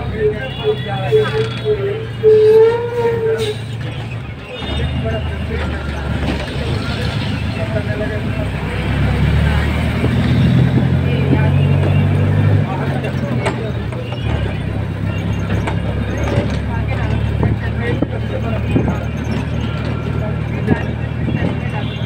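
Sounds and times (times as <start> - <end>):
car engine and road noise: 0.0 - 22.0.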